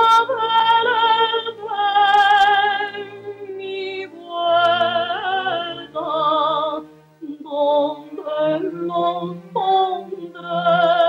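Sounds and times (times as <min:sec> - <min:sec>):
woman singing a lullaby: 0:00.0 - 0:11.0.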